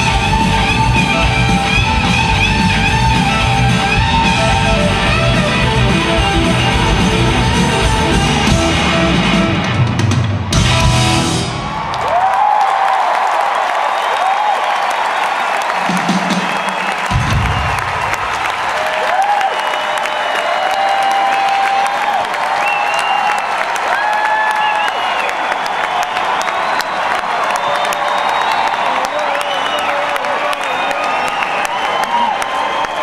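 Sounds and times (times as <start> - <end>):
crowd clapping and cheering: 0.0 - 33.0
rock band final chord: 3.9 - 11.6
shrill whistles and whoops: 19.0 - 33.0.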